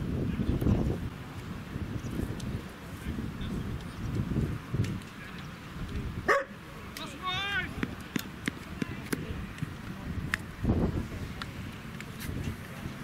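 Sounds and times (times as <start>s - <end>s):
voices outdoors: 0.0s - 13.0s.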